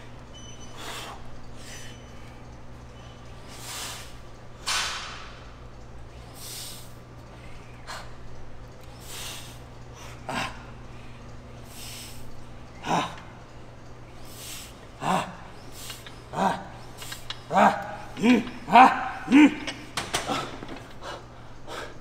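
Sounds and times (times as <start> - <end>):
steady low hum: 0.0 - 22.0
man breathing hard: 9.0 - 13.5, 14.2 - 22.0.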